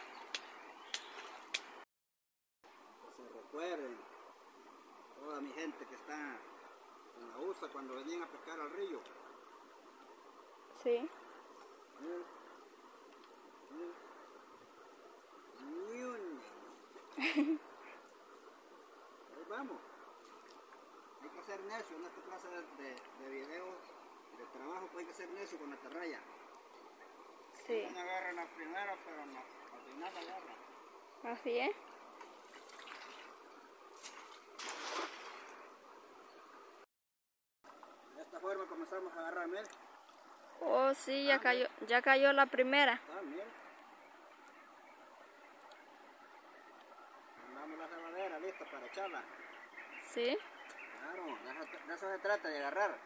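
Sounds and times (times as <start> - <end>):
faint outdoor background: 0.0 - 1.9, 2.6 - 36.9, 37.6 - 53.0
water sloshing: 32.2 - 33.4
net splashing into water: 32.3 - 33.3, 34.0 - 35.6.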